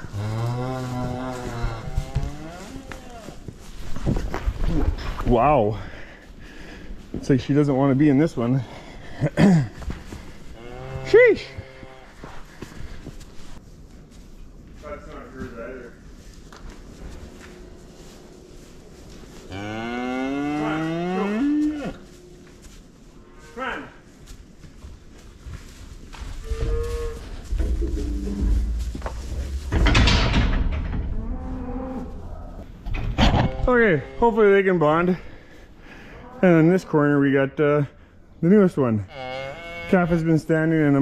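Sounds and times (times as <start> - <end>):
cattle mooing: 0.0 - 3.0
low rumbling: 26.4 - 33.1.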